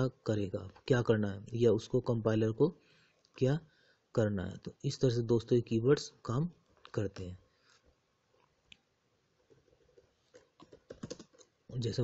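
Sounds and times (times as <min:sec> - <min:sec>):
keyboard typing clicks: 0:09.5 - 0:11.6
man's voice: 0:11.7 - 0:12.0.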